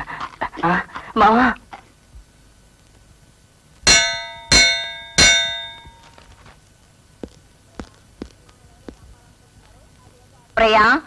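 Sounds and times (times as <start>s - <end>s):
metal bell ringing: 3.9s - 6.1s.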